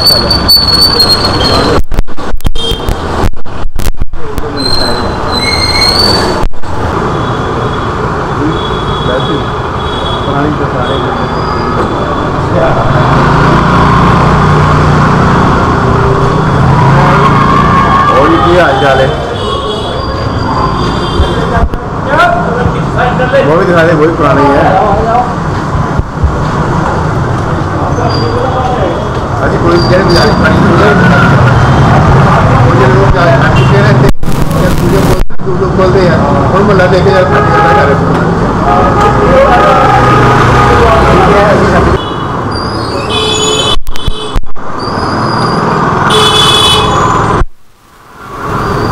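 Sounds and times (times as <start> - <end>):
motor traffic: 0.0 - 48.9
rumbling street noise: 0.0 - 48.9
people's voices: 4.0 - 6.5, 27.3 - 42.0.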